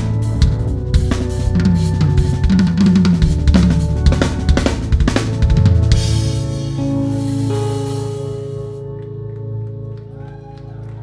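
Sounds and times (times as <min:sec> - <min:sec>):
rock drum kit playing: 0:00.0 - 0:09.0
band sustained notes: 0:00.0 - 0:11.0.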